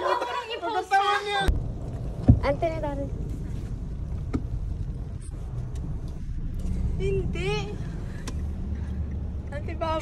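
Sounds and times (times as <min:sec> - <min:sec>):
car rumble inside cabin: 0:01.5 - 0:10.0.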